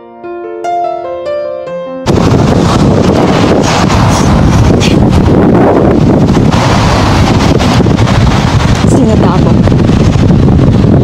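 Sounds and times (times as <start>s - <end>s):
wind buffeting microphone: 2.1s - 11.0s.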